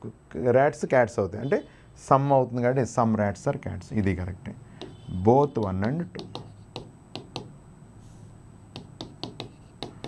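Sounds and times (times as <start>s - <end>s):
marker tapping on whiteboard: 4.8s - 7.6s, 8.7s - 10.0s.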